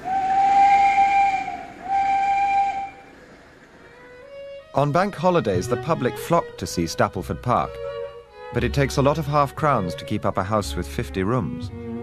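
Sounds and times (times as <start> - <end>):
steam locomotive whistle: 0.0 - 3.1
steam hissing: 0.0 - 3.8.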